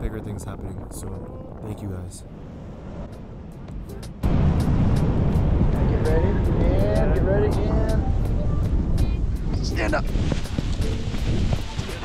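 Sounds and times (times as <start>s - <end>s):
wind rushing over microphone: 0.0s - 12.0s
background music with steady beat: 3.1s - 12.0s.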